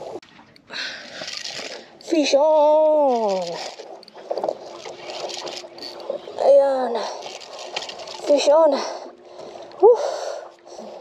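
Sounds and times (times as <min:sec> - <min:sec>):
water splashing: 0:00.0 - 0:11.0
rustling handling noise: 0:03.0 - 0:06.2, 0:07.0 - 0:08.5.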